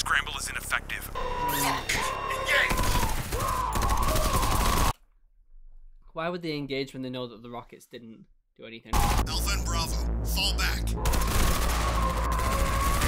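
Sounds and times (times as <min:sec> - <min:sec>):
wavering high wail: 0:01.2 - 0:04.8, 0:11.0 - 0:13.0
heavy automatic gunfire: 0:02.7 - 0:05.0, 0:10.9 - 0:13.0.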